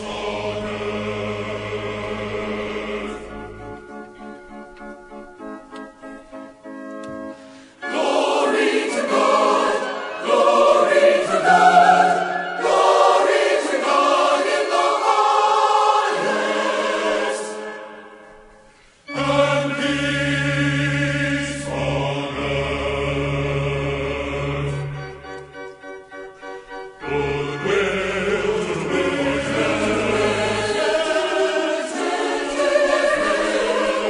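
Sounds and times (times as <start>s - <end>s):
choir singing: 0.0s - 4.5s, 7.8s - 34.0s
organ accompaniment: 0.0s - 34.0s.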